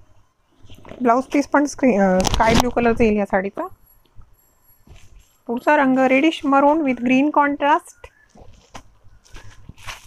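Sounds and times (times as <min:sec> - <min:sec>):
fabric rustling: 0:03.8 - 0:07.4, 0:08.1 - 0:10.0.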